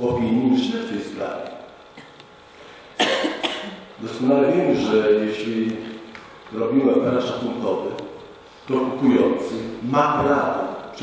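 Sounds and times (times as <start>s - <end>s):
person coughing: 3.0s - 3.9s.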